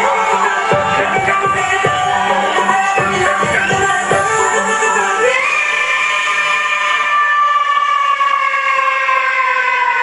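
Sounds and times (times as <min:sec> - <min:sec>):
siren-like wail: 0:00.0 - 0:10.0.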